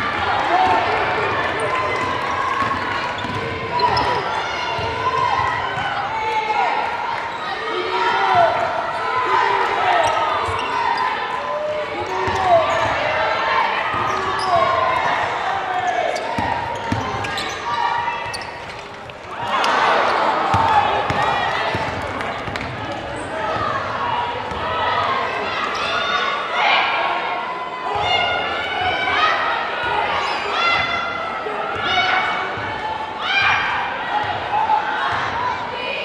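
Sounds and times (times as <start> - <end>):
crowd and player voices: 0.0 - 36.0.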